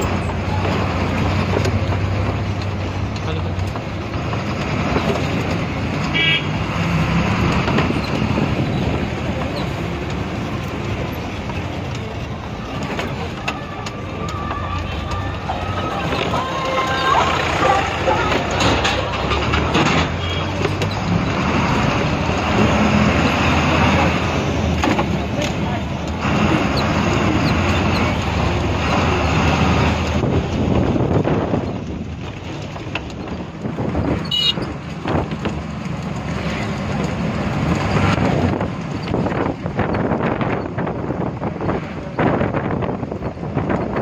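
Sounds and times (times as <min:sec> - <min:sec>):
voices: 0:00.0 - 0:30.6
bus diesel engine hum: 0:00.0 - 0:44.0
road and window noise: 0:00.0 - 0:44.0.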